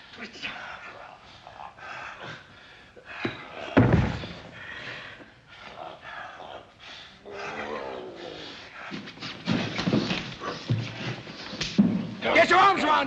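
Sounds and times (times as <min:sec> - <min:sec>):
wrestlers grunting and groaning: 0:00.1 - 0:11.4
heavy thumps of bodies: 0:03.2 - 0:04.6, 0:09.1 - 0:12.3.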